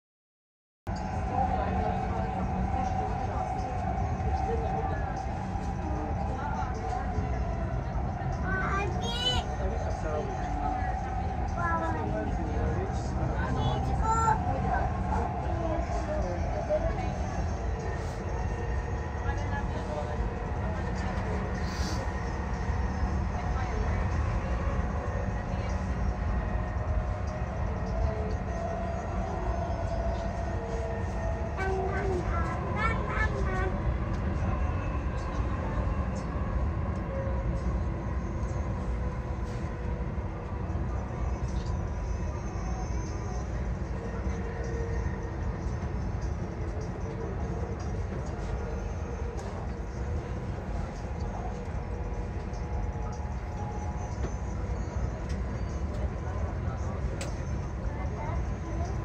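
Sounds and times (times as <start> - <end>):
train rumble inside carriage: 0.9 - 59.0.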